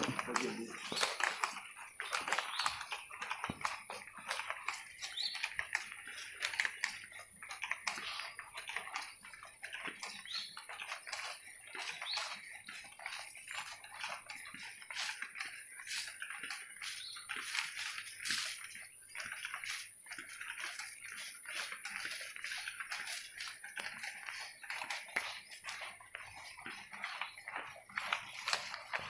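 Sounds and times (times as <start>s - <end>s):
faint voices: 0.0s - 1.7s
plastic bags rustling: 0.0s - 9.2s, 10.3s - 29.0s
footsteps on tiled floor: 0.0s - 29.0s.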